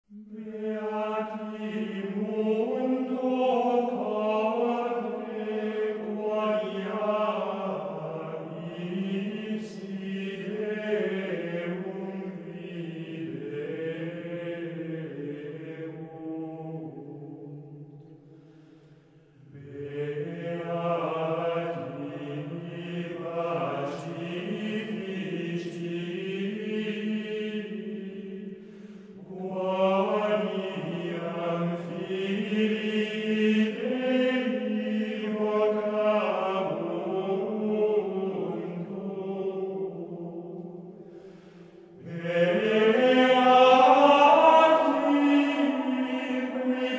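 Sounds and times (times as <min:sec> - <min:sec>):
voices singing slow chant: 0:00.1 - 0:46.9.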